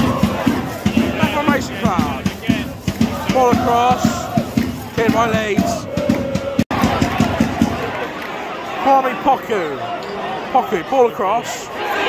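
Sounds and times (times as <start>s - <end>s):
crowd murmur: 0.0s - 12.0s
spectators chattering: 0.0s - 12.0s.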